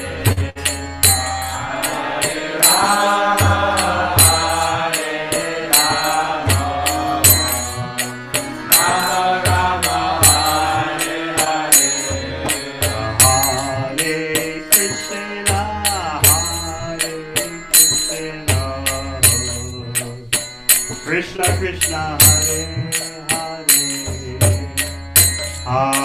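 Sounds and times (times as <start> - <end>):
hand cymbals struck: 0.0 - 26.0
man leading a chant: 21.1 - 24.8.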